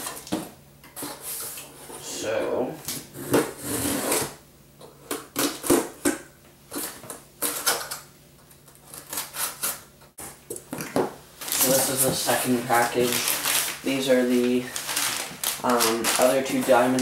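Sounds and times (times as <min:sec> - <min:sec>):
blade scraping cardboard: 0:03.2 - 0:04.3
tape tearing: 0:08.6 - 0:09.8, 0:12.7 - 0:17.0
cardboard rustling: 0:11.4 - 0:17.0.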